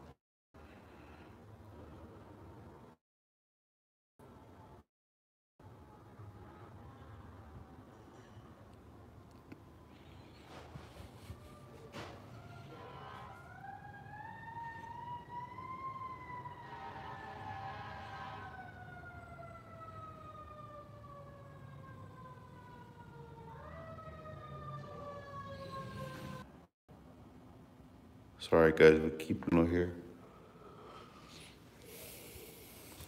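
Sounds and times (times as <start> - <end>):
siren wailing faintly: 9.8 - 26.7.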